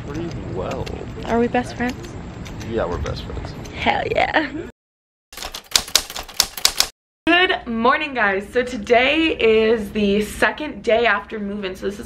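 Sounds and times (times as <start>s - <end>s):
typewriter key clacks: 5.4s - 6.9s.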